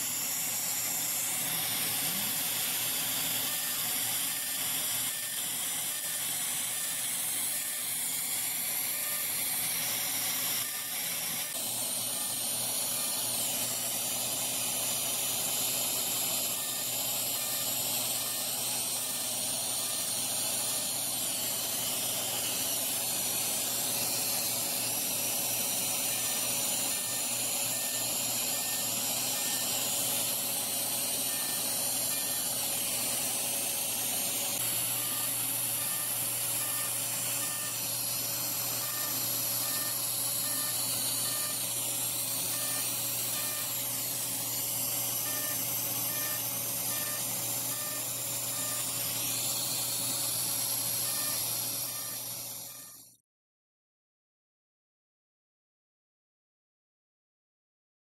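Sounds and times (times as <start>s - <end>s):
laser machine hiss and hum: 0.0s - 53.2s.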